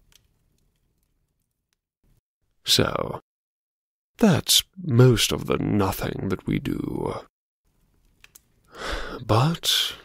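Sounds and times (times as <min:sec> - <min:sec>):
person speaking: 0:02.6 - 0:03.2, 0:04.2 - 0:07.3, 0:08.8 - 0:10.0
in-breath: 0:08.7 - 0:09.2.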